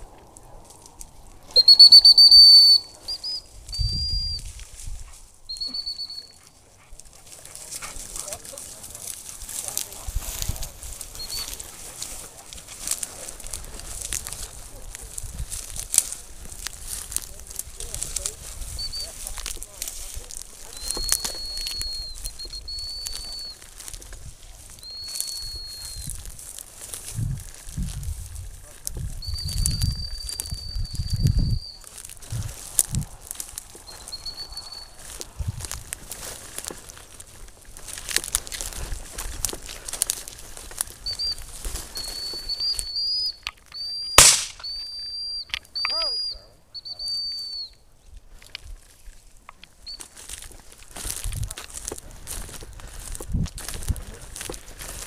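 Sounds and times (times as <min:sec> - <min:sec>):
dog whistle blasts: 0:01.5 - 0:04.4, 0:05.5 - 0:06.4, 0:41.0 - 0:47.8.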